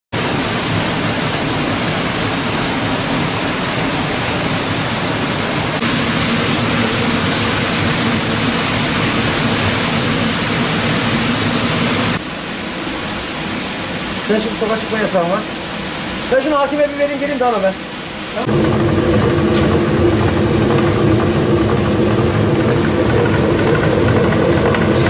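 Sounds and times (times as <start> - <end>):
water gushing into stone pit: 0.2 - 12.2, 18.4 - 25.0.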